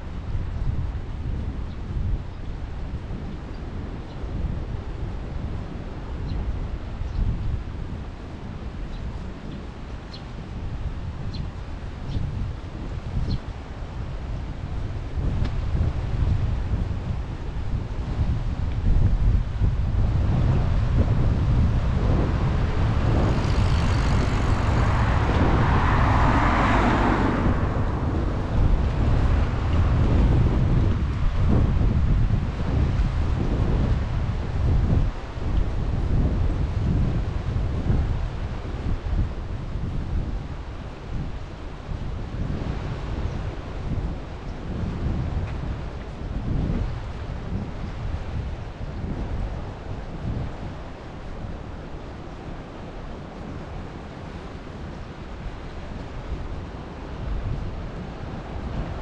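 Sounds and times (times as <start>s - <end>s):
wind buffeting microphone: 0.0s - 59.0s
broad rushing sound: 20.9s - 30.1s.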